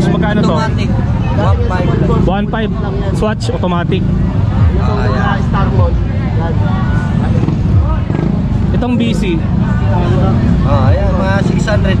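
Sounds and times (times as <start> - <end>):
low rumble of street noise: 0.0 - 12.0
people's voices: 0.0 - 12.0.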